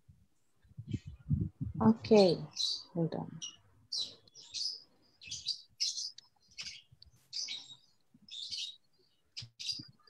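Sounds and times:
small birds chirping: 0.6s - 10.0s.

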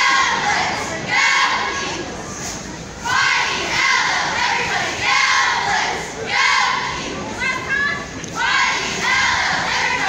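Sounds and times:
cheerleaders shouting in unison: 0.0s - 2.0s, 3.0s - 10.0s.

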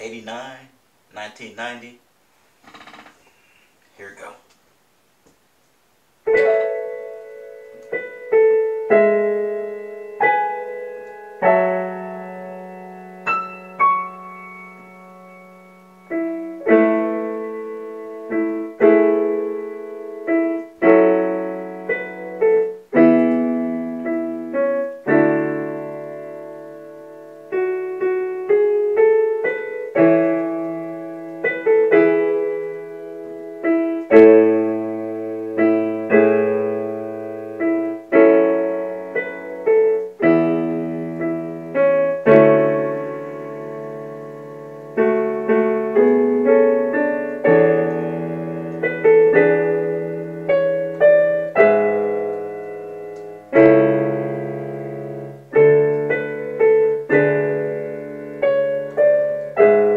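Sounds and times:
slow piano ballad chords: 6.2s - 59.9s.

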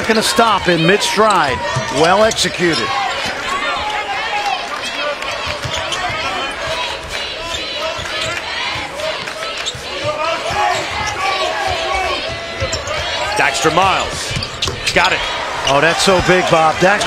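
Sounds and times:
crowd murmur: 0.0s - 17.0s
sneakers squeaking: 0.6s - 4.1s, 4.8s - 17.0s.

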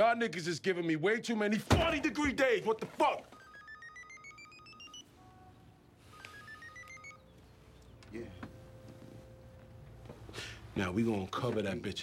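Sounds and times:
phone ringtone beeps: 3.3s - 7.4s.

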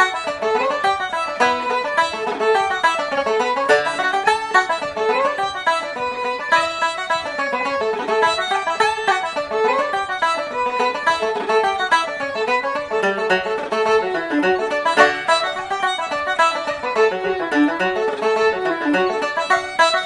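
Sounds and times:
banjo picking: 0.0s - 20.0s
fiddle playing a reel: 0.0s - 20.0s.

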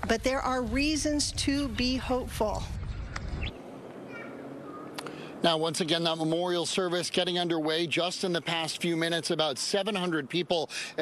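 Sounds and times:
low rumble: 0.0s - 3.8s.

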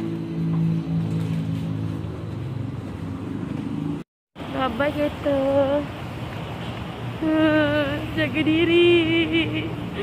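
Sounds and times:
engine running steadily: 0.0s - 10.0s.

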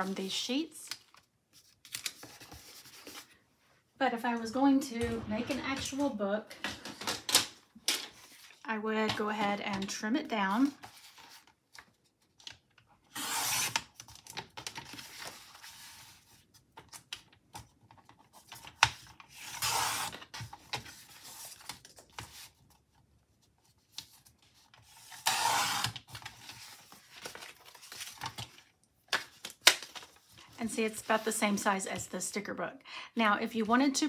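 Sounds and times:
paper rustling and sliding: 24.5s - 28.6s.

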